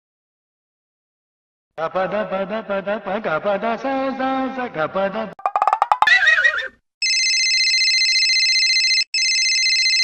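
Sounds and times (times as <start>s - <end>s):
mobile phone ringtone trilling: 5.4s - 10.0s.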